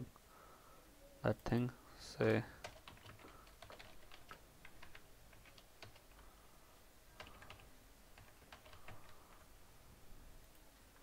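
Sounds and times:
typing on computer keyboard: 2.6 - 6.2, 7.2 - 9.5.

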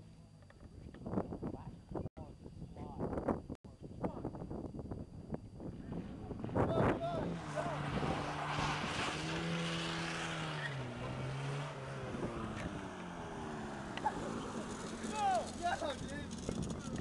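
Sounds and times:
car engine: 5.9 - 17.0
road and tyre noise: 5.9 - 17.0.

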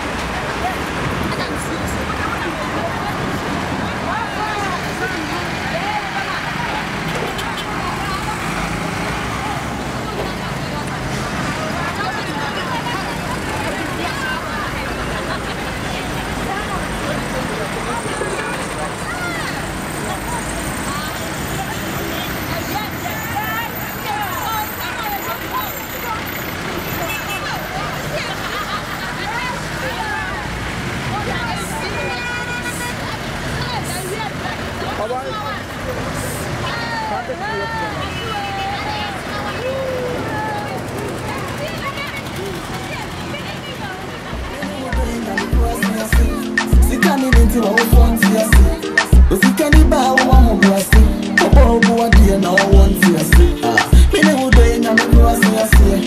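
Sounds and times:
people talking and laughing: 0.0 - 56.0
road traffic rumble: 0.0 - 56.0.

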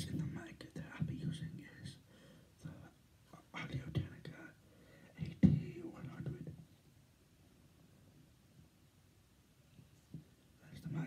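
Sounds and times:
man whispering: 0.0 - 6.8, 10.6 - 11.0
breathing into microphone: 2.1 - 2.6, 4.6 - 5.2.

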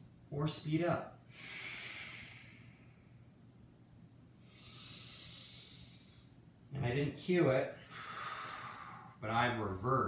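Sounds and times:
man breathing forcefully: 1.3 - 3.0, 4.4 - 6.3, 7.8 - 9.2.

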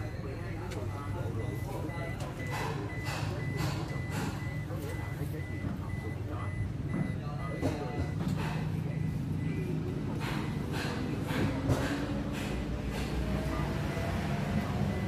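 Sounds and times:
car warning beeper beeping: 0.4 - 11.4, 12.4 - 15.0.

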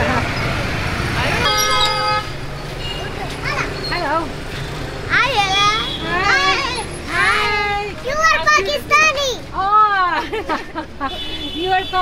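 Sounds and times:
street traffic rumble: 0.0 - 12.0
vehicle horn: 1.4 - 3.0.

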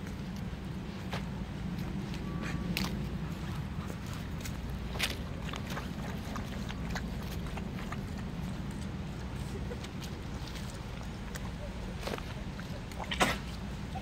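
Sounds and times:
low background rumble: 0.0 - 14.0
small water splashes: 2.8 - 14.0.

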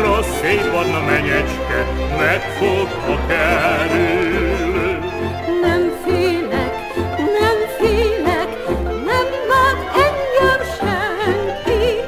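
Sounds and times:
bass and chord accompaniment: 0.0 - 7.3
violin melody with vibrato: 0.0 - 12.0.

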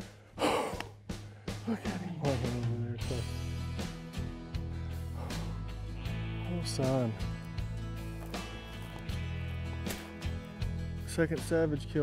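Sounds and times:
man gasping excitedly: 0.0 - 1.6
guitar notes: 5.2 - 11.1.

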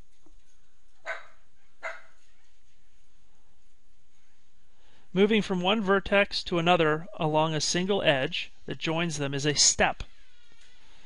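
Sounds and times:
faint room noise: 0.0 - 11.0
dog barking: 1.0 - 2.2.

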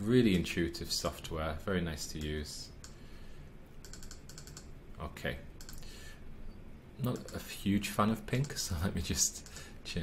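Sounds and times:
computer mouse clicks: 2.2 - 3.0, 3.8 - 4.7, 5.6 - 5.9, 7.0 - 7.4, 8.4 - 8.6, 9.4 - 9.7.

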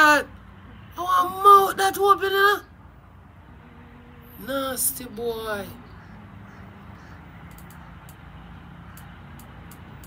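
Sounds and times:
low outdoor hum: 0.0 - 10.0
faint ticks: 7.4 - 8.2.

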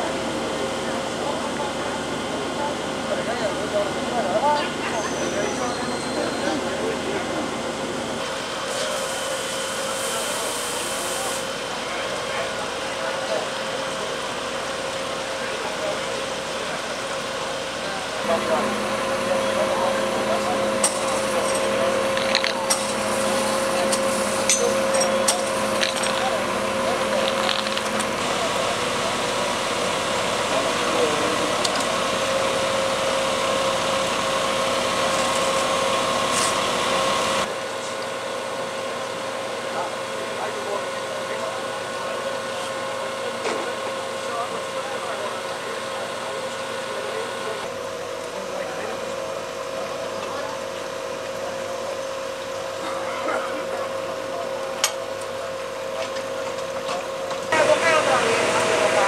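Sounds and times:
fire engine idling hum: 0.0 - 59.0
murmur of voices: 0.0 - 59.0.

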